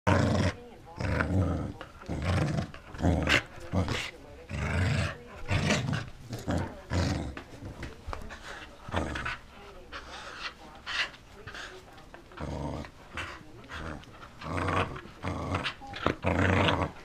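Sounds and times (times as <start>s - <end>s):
dog play-growling: 0.1s - 17.0s.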